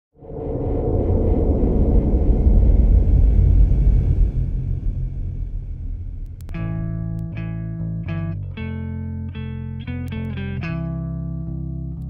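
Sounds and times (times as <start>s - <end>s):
loud deep rumble: 0.2s - 8.4s.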